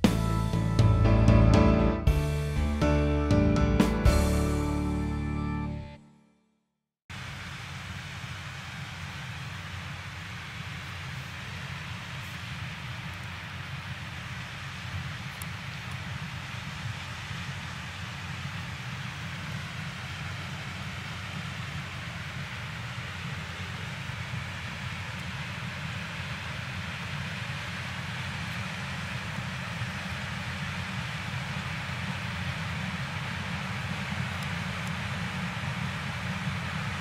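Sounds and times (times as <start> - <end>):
combine harvester drone: 0.0 - 5.9, 7.1 - 37.0.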